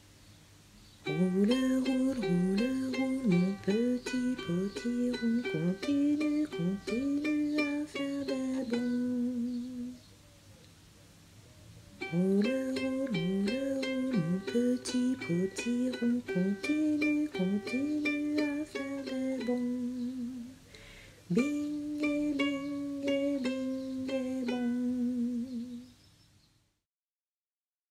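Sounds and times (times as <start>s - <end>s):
plucked ukulele tune: 1.0s - 9.9s, 12.0s - 20.5s, 21.3s - 25.6s
wordless melody line: 1.0s - 10.0s, 12.0s - 20.6s, 21.3s - 25.8s.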